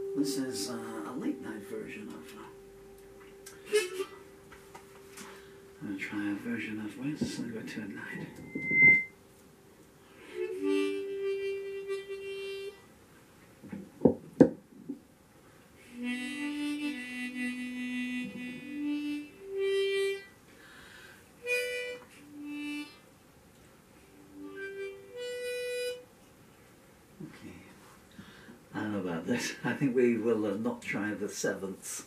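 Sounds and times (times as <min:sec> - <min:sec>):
harmonica playing held notes: 0:00.0 - 0:07.3, 0:07.9 - 0:09.2, 0:10.1 - 0:12.9, 0:15.8 - 0:23.1, 0:24.0 - 0:26.1.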